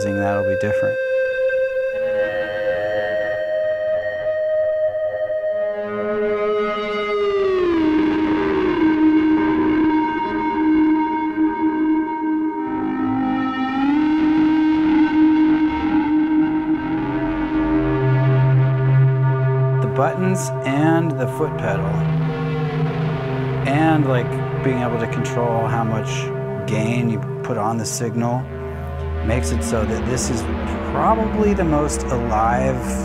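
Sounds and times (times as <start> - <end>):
distorted synthesizer notes gliding: 0.0 - 33.0
lower synthesizer note: 0.0 - 33.0.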